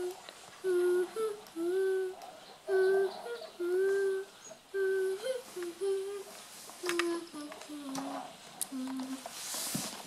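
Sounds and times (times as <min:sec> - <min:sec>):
child humming a slow tune: 0:00.0 - 0:09.3.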